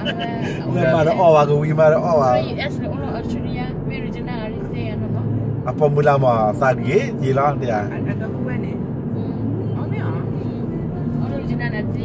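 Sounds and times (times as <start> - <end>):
road and engine noise in car: 0.0 - 12.0.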